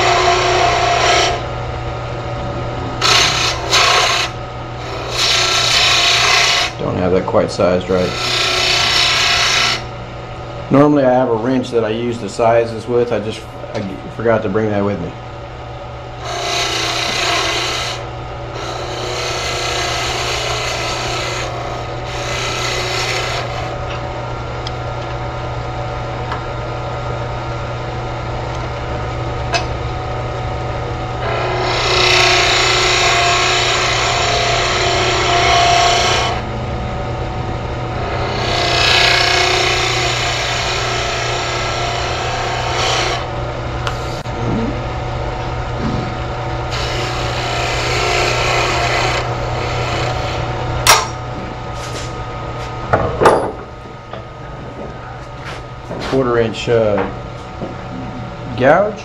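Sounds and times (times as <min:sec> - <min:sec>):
wood lathe tool cutting: 0:00.0 - 0:01.5, 0:02.6 - 0:09.9, 0:16.2 - 0:23.8, 0:31.2 - 0:36.5, 0:37.9 - 0:44.4, 0:46.7 - 0:51.2
lathe motor hum: 0:00.0 - 0:59.0.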